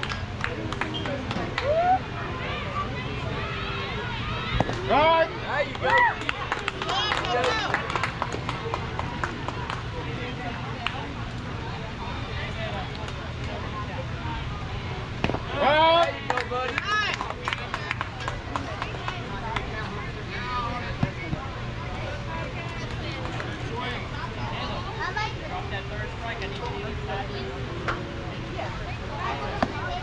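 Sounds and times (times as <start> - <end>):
people talking and calling out: 0.0 - 30.0.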